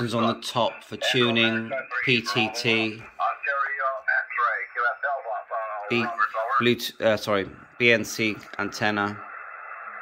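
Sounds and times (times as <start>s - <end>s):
thin narrow-band radio speech: 0.0s - 9.3s.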